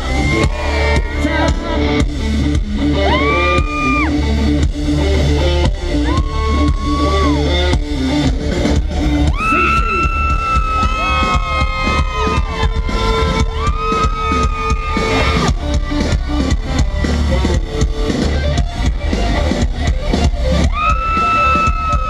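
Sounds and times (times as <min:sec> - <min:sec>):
live country-rock band: 0:00.0 - 0:22.0
electric guitar solo: 0:02.8 - 0:08.4, 0:09.0 - 0:22.0.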